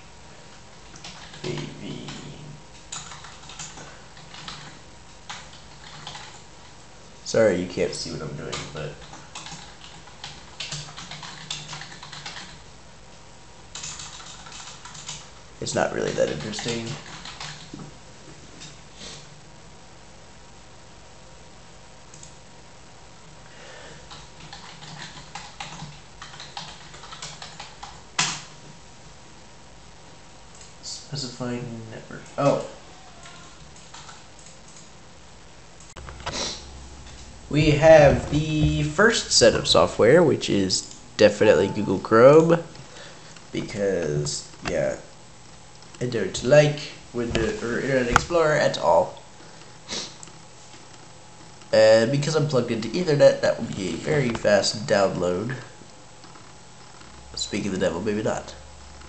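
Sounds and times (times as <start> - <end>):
laptop keyboard keystrokes: 8.6 - 12.6, 13.8 - 15.2, 24.1 - 28.5
loud key strike: 36.0 - 39.9, 47.3 - 48.4.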